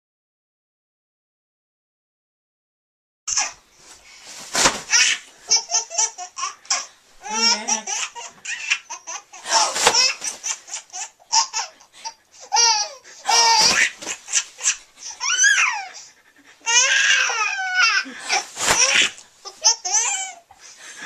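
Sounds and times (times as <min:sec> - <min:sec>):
baby laughing: 0:03.3 - 0:03.6, 0:04.6 - 0:20.6.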